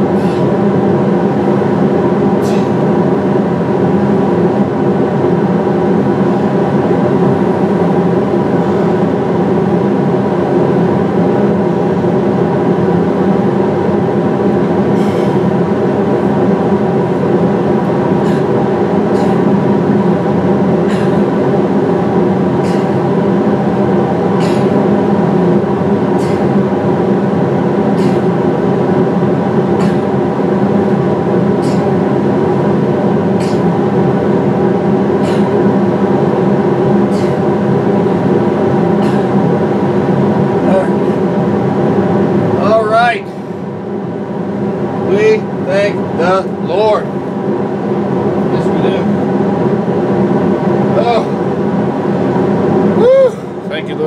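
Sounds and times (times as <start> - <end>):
industrial fans droning: 0.0 - 54.0.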